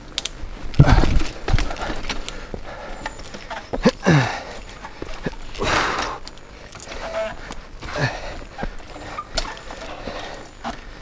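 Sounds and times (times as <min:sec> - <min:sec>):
bike tyres rolling on wooden boards: 0:00.0 - 0:11.0
bike knocks and rattles: 0:00.8 - 0:10.9.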